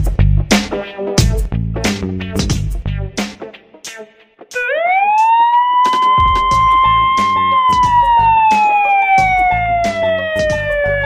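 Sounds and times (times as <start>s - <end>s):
background music: 0.0s - 11.0s
siren-like alarm tone: 4.6s - 11.0s.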